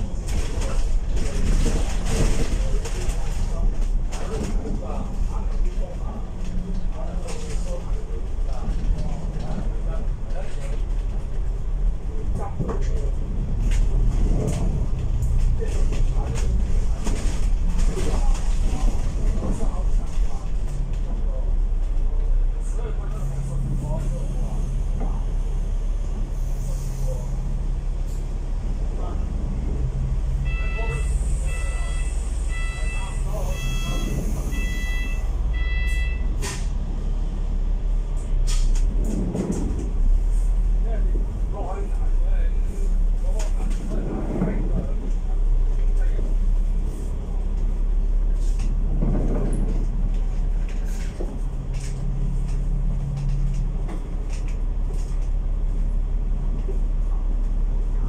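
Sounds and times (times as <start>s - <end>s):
bus engine and road rumble: 0.0s - 58.0s
short electronic beeps: 30.4s - 36.4s.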